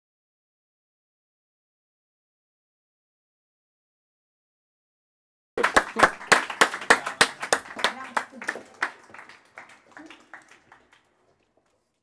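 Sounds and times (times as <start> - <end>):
voices: 5.6 - 10.8
hand clapping: 5.6 - 12.0.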